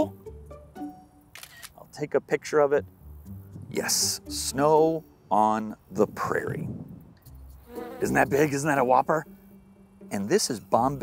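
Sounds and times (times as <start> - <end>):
camera shutter click: 1.3 - 1.8
music with sustained low notes: 2.6 - 11.0.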